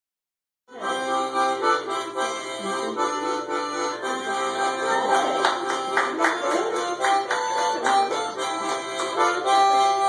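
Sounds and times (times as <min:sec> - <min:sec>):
harmonica melody: 0:00.7 - 0:10.0.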